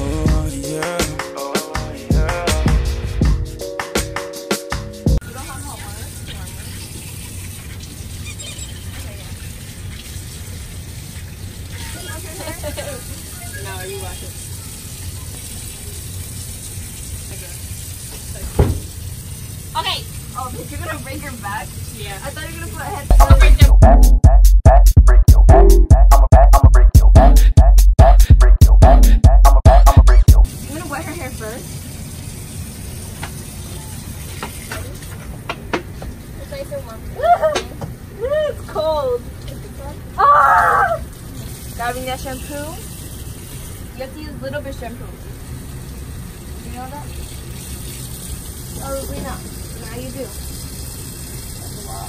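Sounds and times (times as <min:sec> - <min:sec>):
tap water running into sink: 0:05.4 - 0:23.1, 0:30.6 - 0:36.8, 0:41.0 - 0:44.8, 0:45.4 - 0:52.0
sharp thump: 0:18.6 - 0:18.9.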